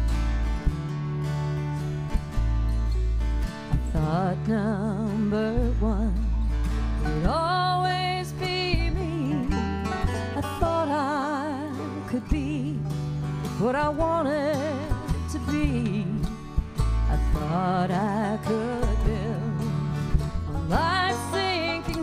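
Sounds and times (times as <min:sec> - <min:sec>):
acoustic guitars strumming: 0:00.0 - 0:22.0
upright bass notes: 0:00.0 - 0:22.0
person singing with vibrato: 0:07.0 - 0:16.4, 0:17.1 - 0:19.8, 0:20.6 - 0:22.0.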